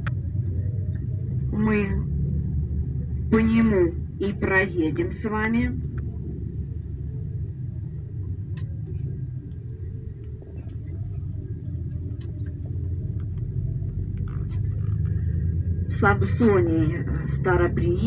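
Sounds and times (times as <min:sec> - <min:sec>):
bus driving rumble: 0:00.0 - 0:18.0
faint clicks and rattles: 0:08.2 - 0:15.4.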